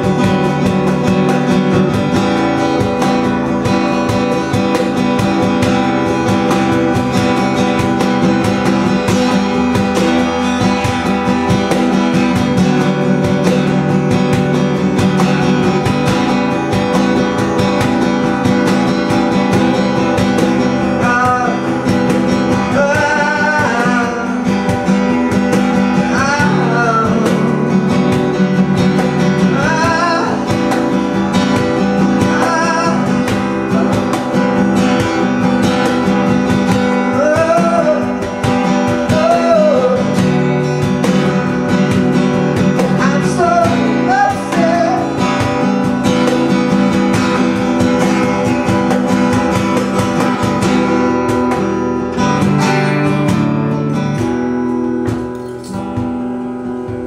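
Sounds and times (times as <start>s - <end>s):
acoustic guitar strumming: 0.0s - 57.0s
cajon drumming: 0.0s - 57.0s.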